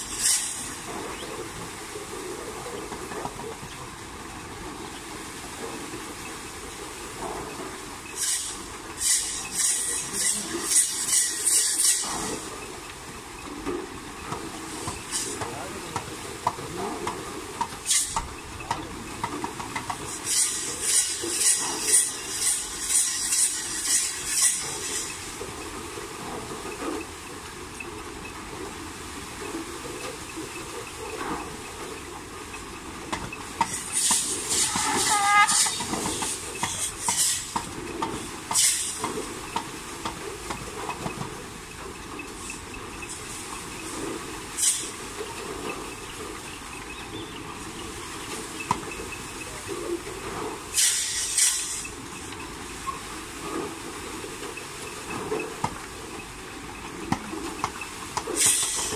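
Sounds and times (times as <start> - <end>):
water wheel hissing and clattering: 0.0 - 58.9.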